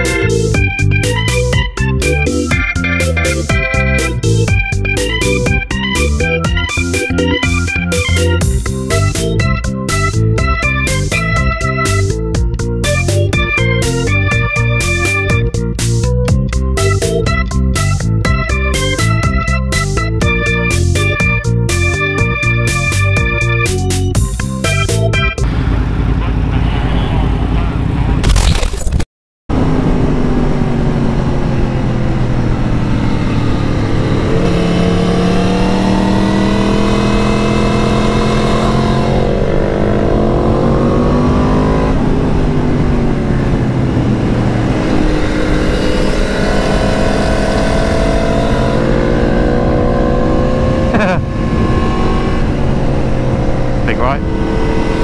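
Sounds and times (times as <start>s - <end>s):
motorcycle engine accelerating: 24.2s - 28.2s, 29.5s - 55.0s.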